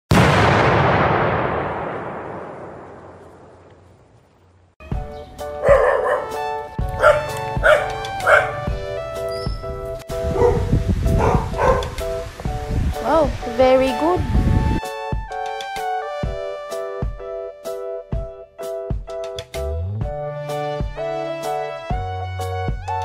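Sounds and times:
background music: 0:04.8 - 0:23.0
small dog barking: 0:05.6 - 0:06.4, 0:07.0 - 0:08.7, 0:10.3 - 0:12.0.

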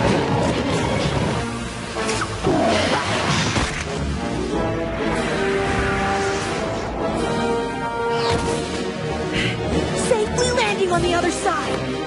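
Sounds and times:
dramatic chase music: 0:00.0 - 0:12.0.

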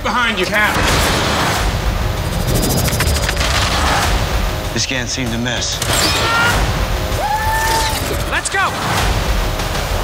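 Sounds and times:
dramatic trailer music: 0:00.0 - 0:10.0.

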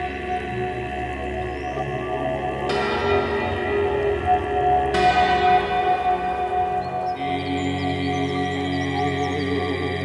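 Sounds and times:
ambient meditation music: 0:00.0 - 0:10.0.

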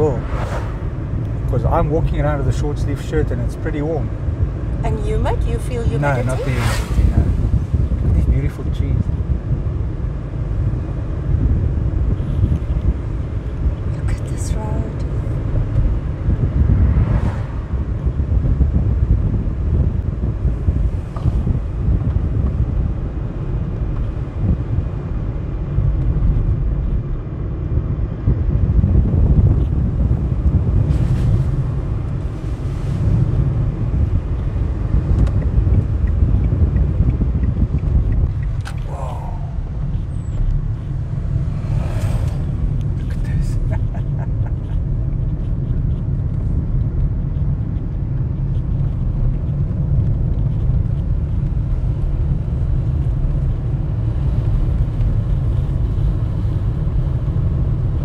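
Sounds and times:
car tyres and engine rumble: 0:00.0 - 0:58.0.

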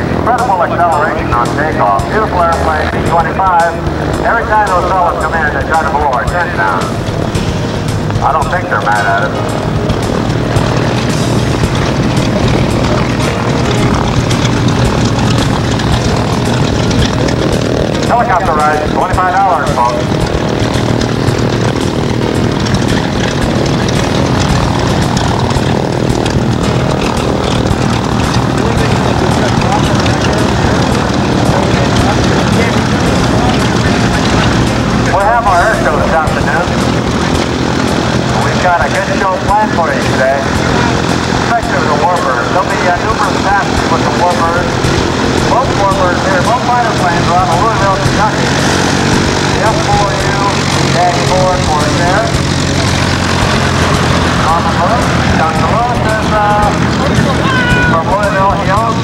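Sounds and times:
people talking: 0:00.0 - 0:07.1, 0:08.1 - 0:17.3, 0:17.9 - 0:20.6, 0:25.0 - 0:59.0
propeller plane engines running: 0:00.0 - 0:59.0.

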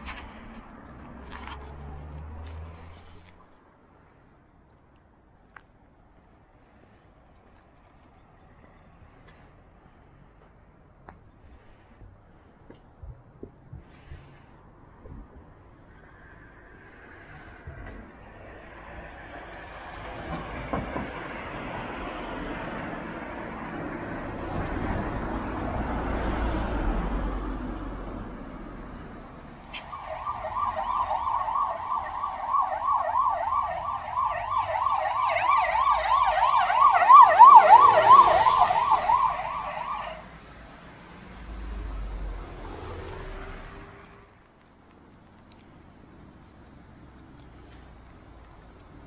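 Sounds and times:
passing road traffic: 0:00.0 - 0:49.0
emergency siren yelping: 0:29.7 - 0:40.3.

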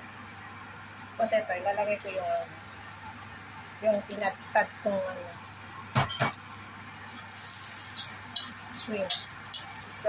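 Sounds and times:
food sizzling in oil: 0:01.7 - 0:10.0
spatula scraping wok: 0:07.1 - 0:10.0
metal spatula knocking wok: 0:07.8 - 0:09.8.

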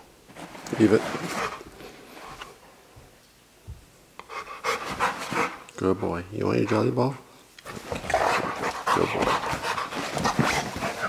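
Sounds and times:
dog panting: 0:01.1 - 0:01.8, 0:04.2 - 0:05.7, 0:06.5 - 0:11.0.

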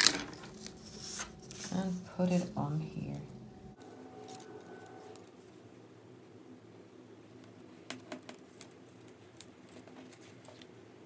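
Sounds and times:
foil tape crackling: 0:00.0 - 0:02.0.

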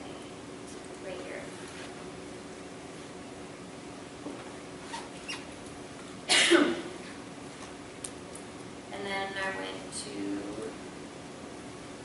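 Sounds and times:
person coughing: 0:06.3 - 0:07.0.

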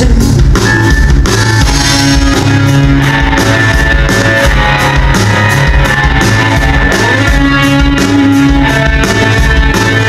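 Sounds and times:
bass: 0:00.0 - 0:10.0
drum kit: 0:00.0 - 0:10.0
electric guitar: 0:00.0 - 0:10.0.

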